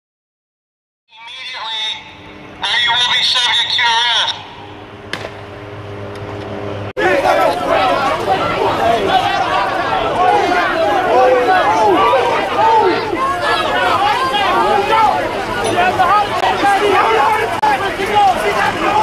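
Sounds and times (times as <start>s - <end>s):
crowd talking: 1.2s - 4.8s, 7.0s - 19.0s.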